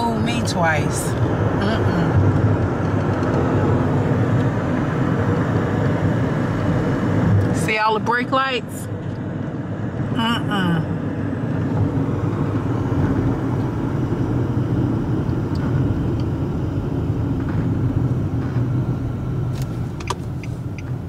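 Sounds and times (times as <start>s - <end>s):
road and engine rumble in car: 0.0s - 21.0s.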